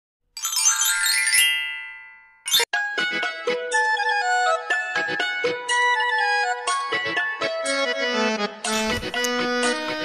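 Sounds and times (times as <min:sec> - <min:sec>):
sparkling chime flourish: 0:00.4 - 0:02.7.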